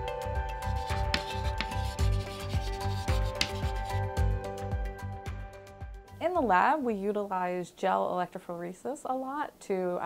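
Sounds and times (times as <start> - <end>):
background music with steady beat: 0.0 - 6.5
chalk scratching on chalkboard: 0.6 - 4.0.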